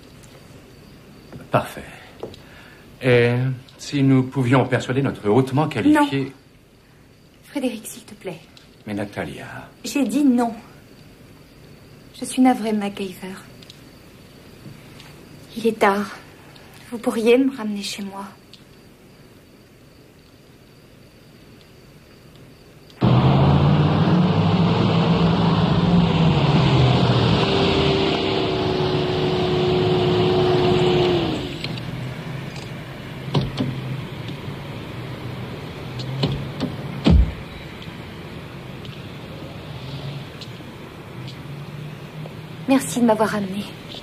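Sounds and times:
car engine revving and idling: 23.0 - 42.7
knocks and sharp thump: 33.3 - 33.8, 36.0 - 37.5.

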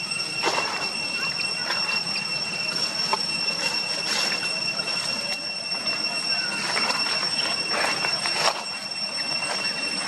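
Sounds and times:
high-pitched whine: 0.0 - 10.0
dry leaves crackling: 2.7 - 5.4, 6.4 - 10.0.

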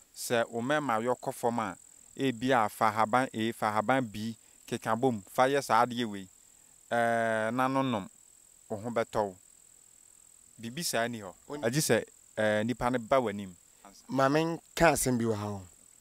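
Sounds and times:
crickets trilling: 0.0 - 16.0
man talking: 0.2 - 6.3, 6.9 - 8.1, 8.7 - 9.4, 10.6 - 15.7.

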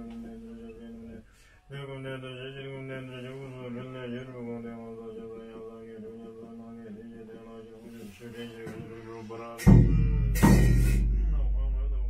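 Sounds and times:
low voice chanting: 0.0 - 12.0.

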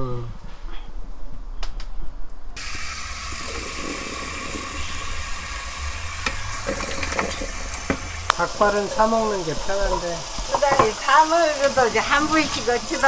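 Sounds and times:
pan knocking: 6.1 - 13.0
tap running into steel sink: 6.2 - 8.3, 9.9 - 11.0.

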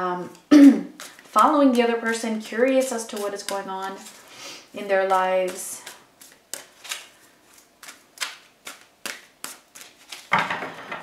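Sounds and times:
cards being shuffled: 5.0 - 10.4.

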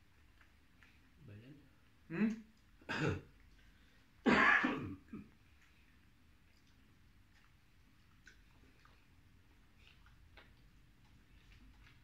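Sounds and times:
man coughing: 2.9 - 3.3, 4.2 - 5.2.

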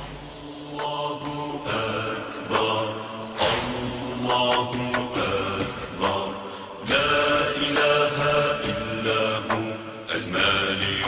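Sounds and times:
voices chanting religious recitation: 0.0 - 11.0.

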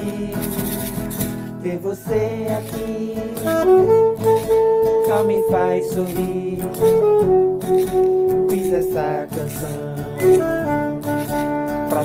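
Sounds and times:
acoustic guitar: 0.0 - 12.0
person singing: 0.0 - 12.0
saxophone playing: 3.3 - 9.3, 10.2 - 12.0.

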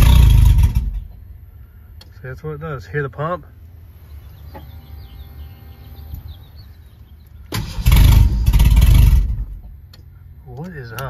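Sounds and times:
car engine cranking: 0.0 - 1.4, 3.7 - 11.0
fuel pump humming: 0.0 - 11.0.

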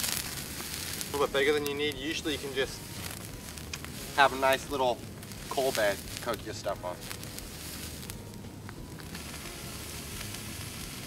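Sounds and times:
sausages sizzling: 0.0 - 11.0
wood fire crackling: 0.0 - 11.0.

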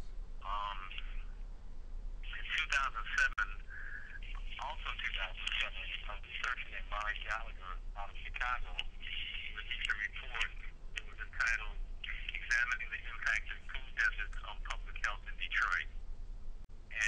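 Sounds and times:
steady low hum: 0.0 - 17.0
person speaking over telephone: 0.4 - 1.3, 2.2 - 15.9.

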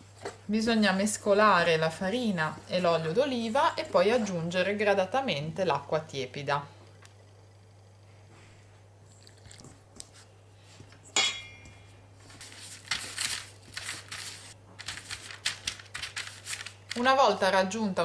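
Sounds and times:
baking paper crinkling: 12.2 - 17.4.

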